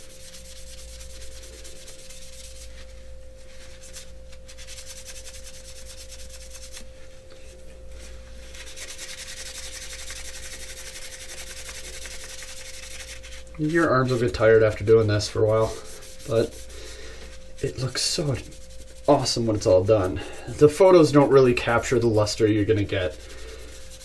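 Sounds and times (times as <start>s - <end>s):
paper towel rubbing plastic: 0.0s - 6.9s, 8.0s - 24.0s
thin steady hum: 0.0s - 24.0s.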